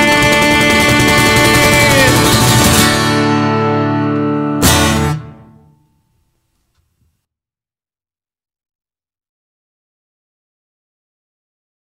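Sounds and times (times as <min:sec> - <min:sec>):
cajon hits: 0:00.0 - 0:03.3
acoustic guitar strumming: 0:00.0 - 0:06.1.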